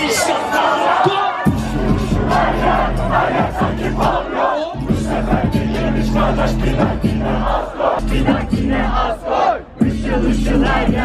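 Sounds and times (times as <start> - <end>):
crowd shouting and cheering: 0.0 - 11.0
heavy bass beat: 1.4 - 11.0
loud live music: 1.4 - 11.0.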